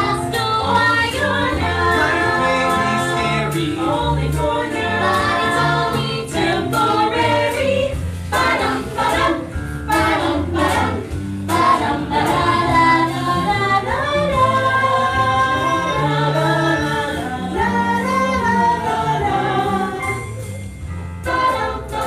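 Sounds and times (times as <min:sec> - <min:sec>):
musical accompaniment: 0:00.0 - 0:22.0.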